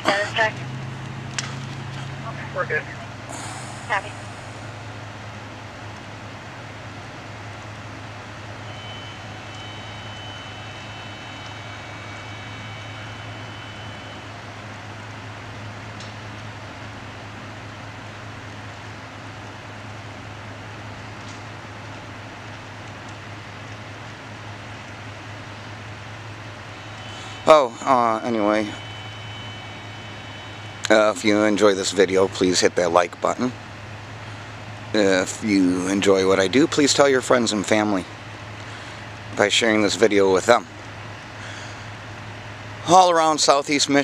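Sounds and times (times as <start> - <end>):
outdoor noise: 0.0 - 44.0
vehicle engine idling: 0.0 - 44.0
faint high steady tone: 8.3 - 15.9, 25.1 - 33.6, 34.7 - 44.0.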